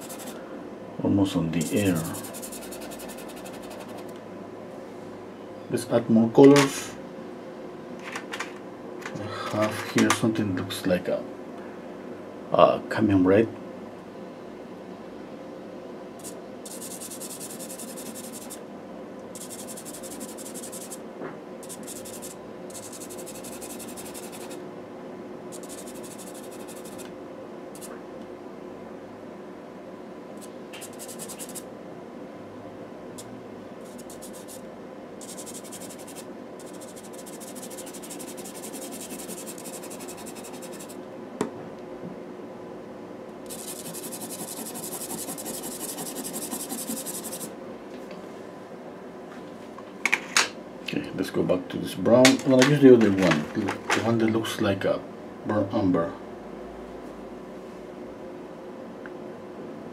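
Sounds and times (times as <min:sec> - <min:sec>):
pastel pencil scratching on paper: 0:00.0 - 0:00.4, 0:01.6 - 0:04.0, 0:16.2 - 0:18.6, 0:19.4 - 0:21.0, 0:21.6 - 0:24.6, 0:25.6 - 0:27.0, 0:30.8 - 0:31.6, 0:33.9 - 0:34.6, 0:35.2 - 0:41.0, 0:43.5 - 0:47.5.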